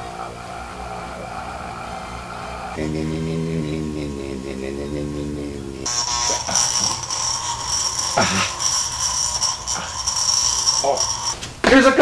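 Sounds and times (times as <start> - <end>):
electric massager buzzing: 0.0 - 11.5.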